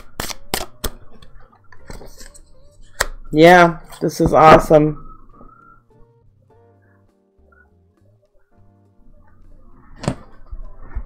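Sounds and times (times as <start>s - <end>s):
cards slapping together: 0.0s - 1.0s.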